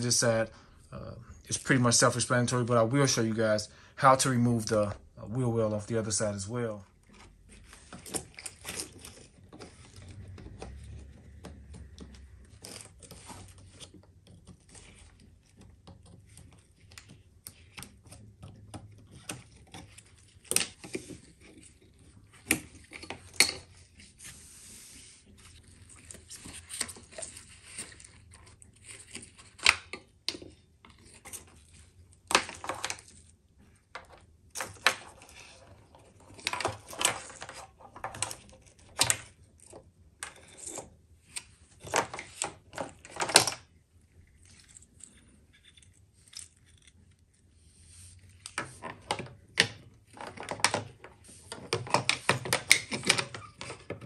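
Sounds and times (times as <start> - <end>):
plastic clicks and clatter: 25.6 - 47.2, 48.4 - 54.0.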